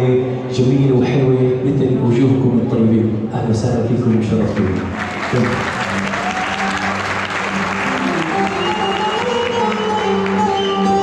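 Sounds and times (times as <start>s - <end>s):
music: 0.0s - 11.0s
audience applauding: 4.4s - 11.0s.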